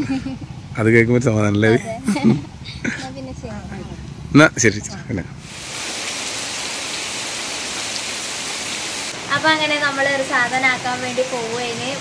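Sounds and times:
heavy rain on leaves: 5.4s - 12.0s.

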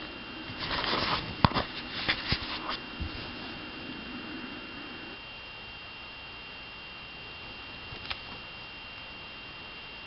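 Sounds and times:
faint high whine: 0.0s - 10.0s.

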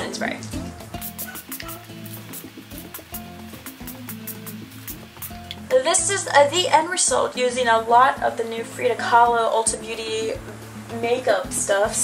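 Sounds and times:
background music with bass: 0.0s - 12.0s
quick ticking beat: 0.8s - 6.2s.

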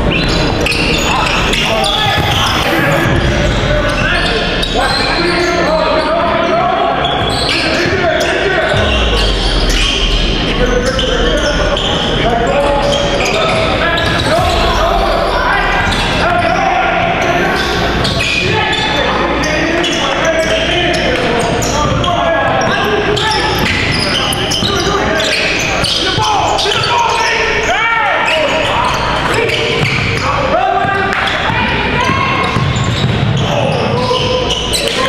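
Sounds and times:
voices calling out in a hall: 0.0s - 35.0s.

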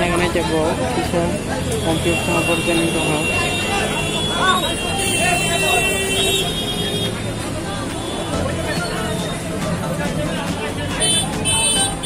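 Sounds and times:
people talking: 0.0s - 12.0s
traffic rumble: 0.0s - 12.0s.

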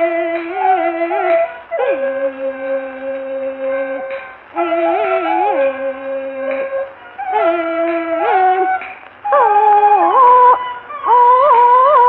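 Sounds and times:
flute doubling the melody: 0.0s - 12.0s.

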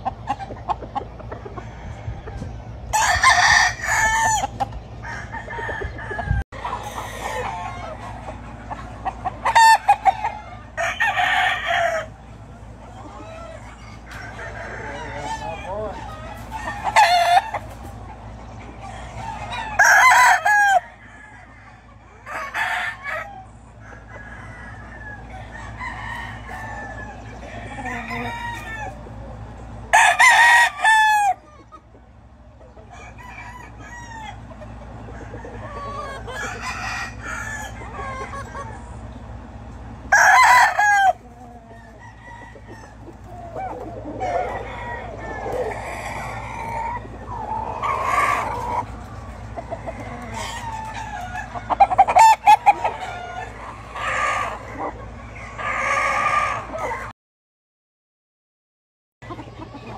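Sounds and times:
distant roosters crowing: 0.0s - 57.1s
rooster crowing: 1.3s - 8.1s, 9.4s - 12.2s, 13.0s - 17.7s, 18.8s - 31.5s, 32.9s - 38.8s, 40.0s - 57.1s.

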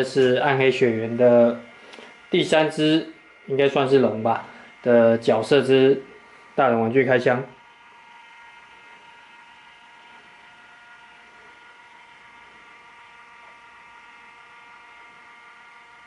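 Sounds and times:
faint electrical hum: 0.0s - 16.0s
thin high whine: 0.0s - 16.0s.

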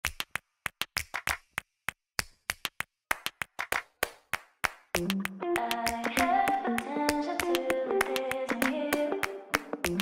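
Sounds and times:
sharp hand claps: 0.0s - 10.0s.

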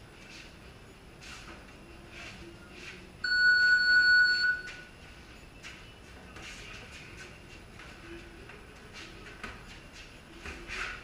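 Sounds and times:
electronic timer beep: 3.2s - 4.9s.

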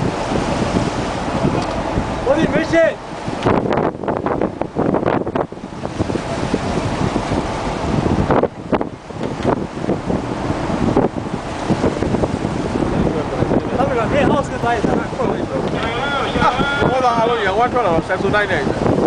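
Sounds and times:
rough sea washing against hull: 0.0s - 19.0s
wind buffeting microphone: 0.0s - 19.0s.

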